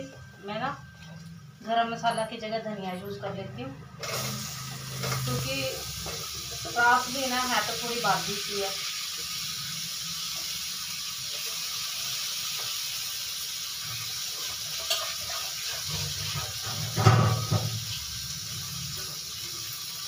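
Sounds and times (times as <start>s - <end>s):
spices frying in oil: 3.9s - 20.0s.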